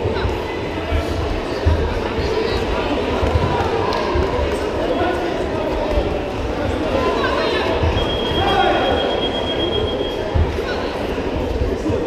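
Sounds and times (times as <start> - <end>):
murmur of voices in sports hall: 0.0 - 12.0.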